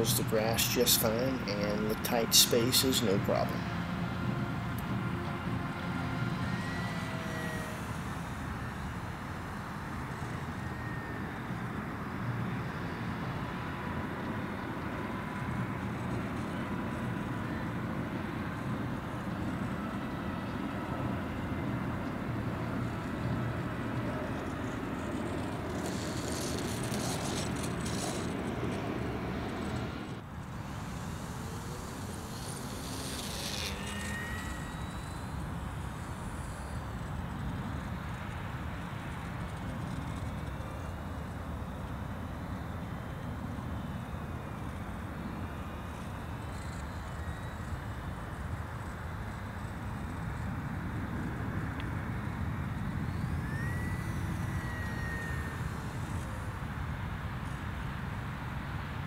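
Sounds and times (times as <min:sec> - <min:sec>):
model plane motor buzzing: 0:00.0 - 0:58.6
outdoor noise: 0:00.0 - 0:59.0.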